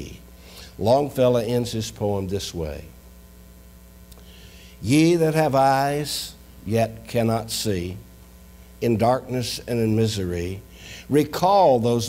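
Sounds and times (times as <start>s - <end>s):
man reading aloud: 0.0s - 3.0s, 4.8s - 8.0s, 8.8s - 12.0s
electrical mains hum: 0.0s - 12.0s.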